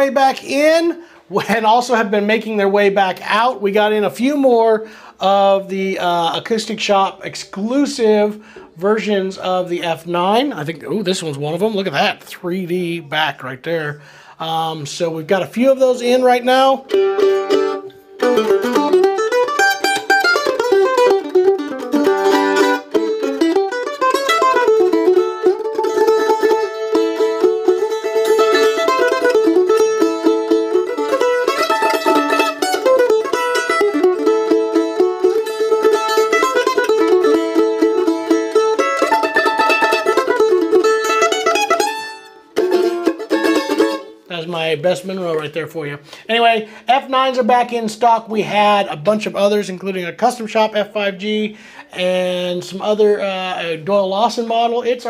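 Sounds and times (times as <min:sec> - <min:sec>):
mandolin fast picked melody: 0:15.4 - 0:45.8.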